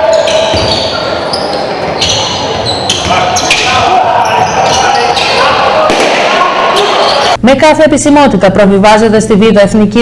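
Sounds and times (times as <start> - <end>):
shoe squeaks: 0.0 - 5.6
echoing voices: 0.0 - 10.0
basketball bouncing on court: 0.2 - 3.6.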